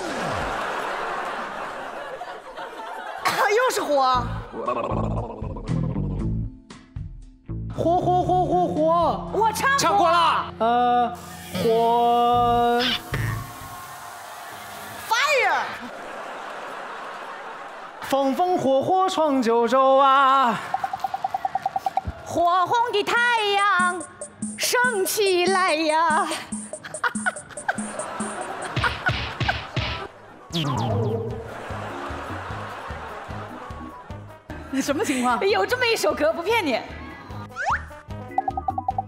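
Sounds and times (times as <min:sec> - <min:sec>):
audience laughing: 0:00.0 - 0:06.3, 0:15.7 - 0:19.0, 0:26.3 - 0:35.5
background music: 0:02.7 - 0:39.0
comic falling-pitch sound effect: 0:30.5 - 0:31.5.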